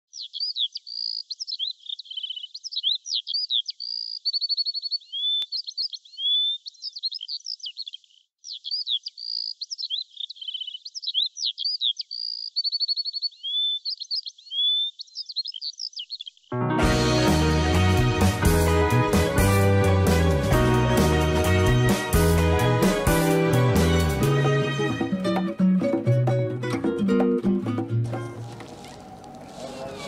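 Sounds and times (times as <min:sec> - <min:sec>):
birdsong chirps and trills: 0:00.1 - 0:16.6.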